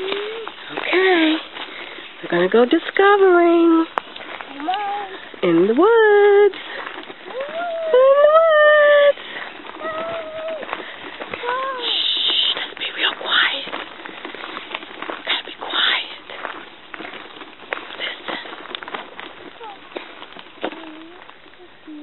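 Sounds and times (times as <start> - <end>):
footsteps on gravel: 0.0 - 22.0.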